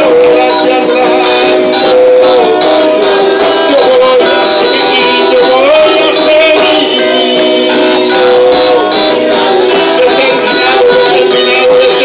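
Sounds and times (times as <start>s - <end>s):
instrumental backing music: 0.0s - 12.0s
man singing into microphone: 0.0s - 12.0s.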